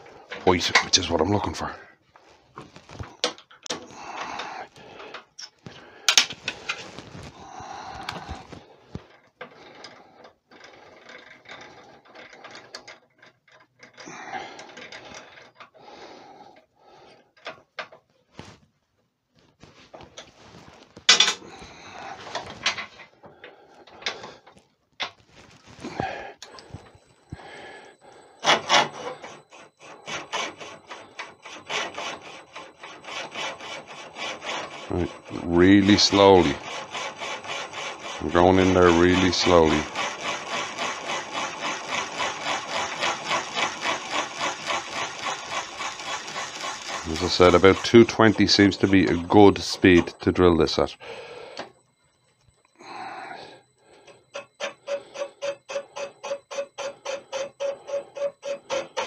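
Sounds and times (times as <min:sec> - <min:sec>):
lathe whine: 0:00.0 - 0:17.2, 0:25.3 - 0:59.0
metal clicks and rattles of drill chuck: 0:39.3 - 0:48.2.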